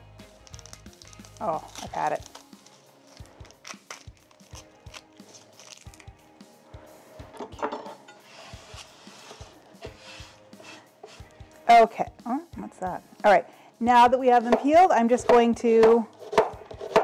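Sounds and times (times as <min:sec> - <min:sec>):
soft background music: 0:00.0 - 0:17.0
onion skin crackling: 0:00.2 - 0:06.2.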